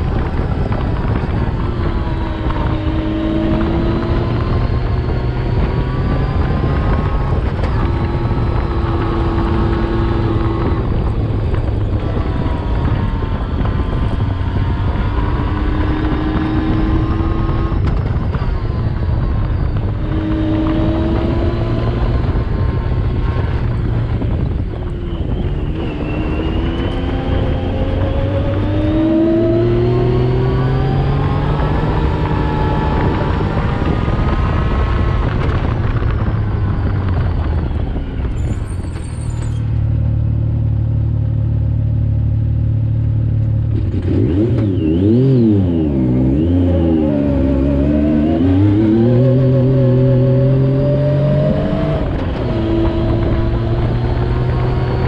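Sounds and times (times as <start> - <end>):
engine revving: 0.0 - 37.8, 42.0 - 55.0
constant low rush: 0.0 - 55.0.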